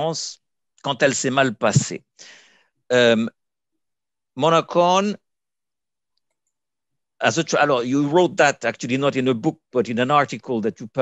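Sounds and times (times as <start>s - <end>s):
man speaking: 0.0s - 2.2s, 2.9s - 3.4s, 4.4s - 5.2s, 7.2s - 11.0s.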